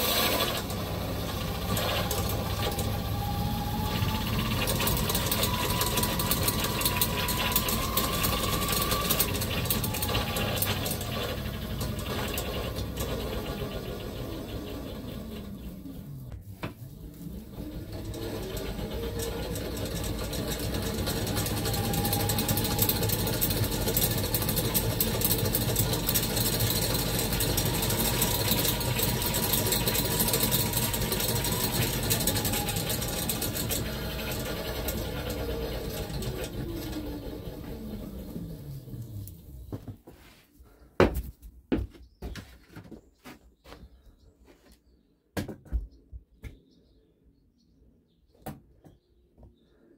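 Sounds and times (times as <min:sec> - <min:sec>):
electric motor whirring and whining: 0:00.0 - 0:16.3, 0:16.9 - 0:39.5.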